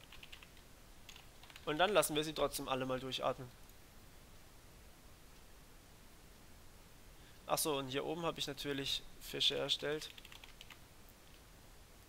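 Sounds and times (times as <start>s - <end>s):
faint keyboard typing: 0.0s - 2.4s, 9.5s - 11.5s.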